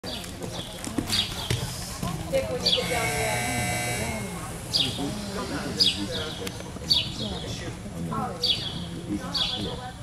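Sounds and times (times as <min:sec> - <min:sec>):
horse hoofbeats on soft dirt: 0:00.0 - 0:02.6.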